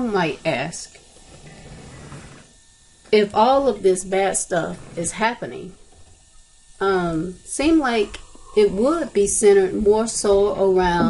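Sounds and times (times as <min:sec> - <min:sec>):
weak low hum: 0:02.6 - 0:11.0.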